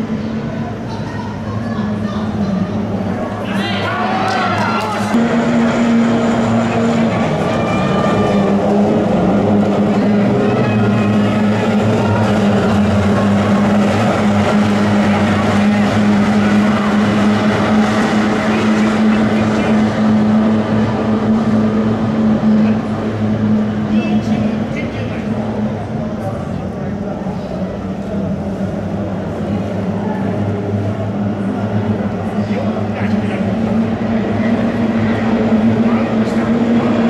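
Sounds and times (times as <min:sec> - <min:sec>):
racing boat outboard motors: 0:00.1 - 0:37.0.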